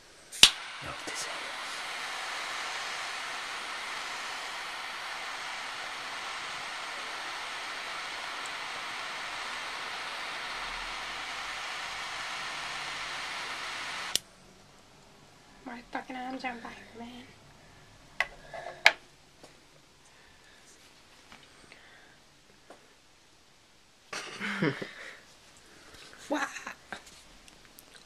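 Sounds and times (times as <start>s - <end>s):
lighter flame hissing: 0.0s - 14.3s
gas lighter clicking: 0.4s - 1.4s.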